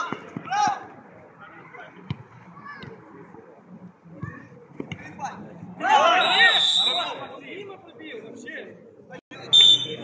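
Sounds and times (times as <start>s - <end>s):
referee's whistle blast: 6.2s - 7.2s, 9.5s - 10.0s.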